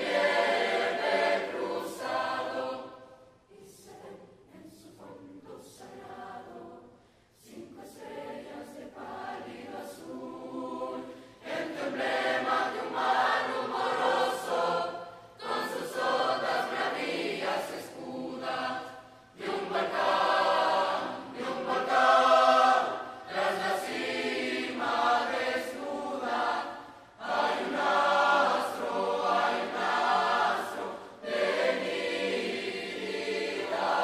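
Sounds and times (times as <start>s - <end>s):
large mixed choir singing: 0.0s - 34.0s.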